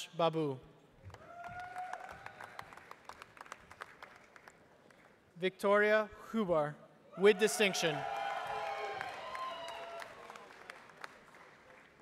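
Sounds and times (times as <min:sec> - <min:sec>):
audience applause: 0:01.1 - 0:05.1, 0:07.8 - 0:12.0.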